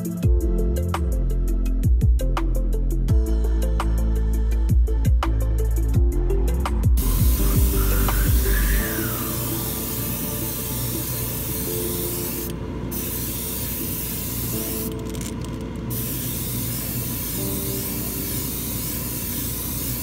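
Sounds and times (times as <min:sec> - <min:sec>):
airbrush spraying hiss: 0:07.0 - 0:15.3, 0:15.9 - 0:20.0.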